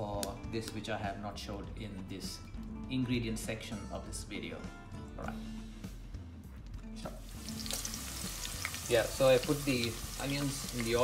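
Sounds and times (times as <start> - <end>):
soft background music: 0.0 - 11.0
onions sizzling in hot oil: 7.2 - 11.0.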